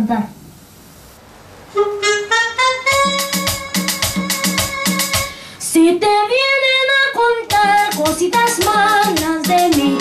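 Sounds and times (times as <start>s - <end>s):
instrumental backing track: 1.7s - 10.0s.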